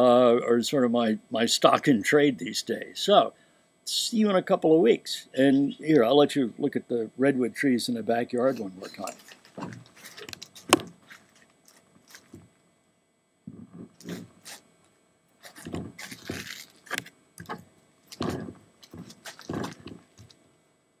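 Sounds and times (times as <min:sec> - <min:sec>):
camera handling scrapes and knocks: 0:08.5 - 0:12.5, 0:13.8 - 0:14.6, 0:15.4 - 0:20.3.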